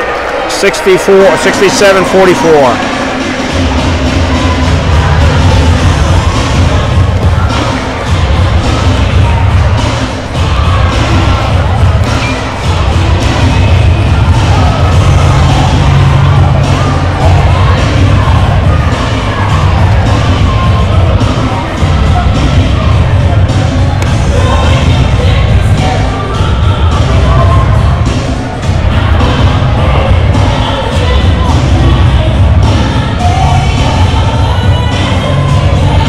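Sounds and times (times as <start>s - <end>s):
crowd cheering and talking: 0.0s - 36.0s
music with pulsing bass: 1.6s - 36.0s.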